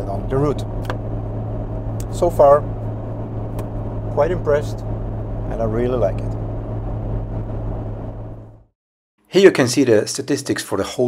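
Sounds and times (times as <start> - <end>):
engine and road noise hum: 0.0 - 8.8.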